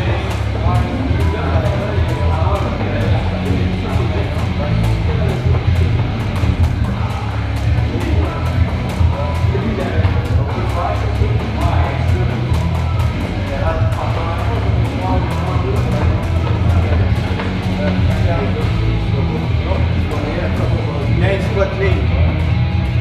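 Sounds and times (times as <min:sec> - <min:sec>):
rock music with guitar: 0:22.0 - 0:23.0.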